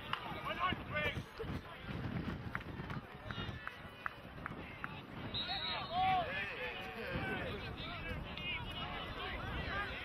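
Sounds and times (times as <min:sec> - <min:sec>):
players shouting calls: 0:04.6 - 0:10.0.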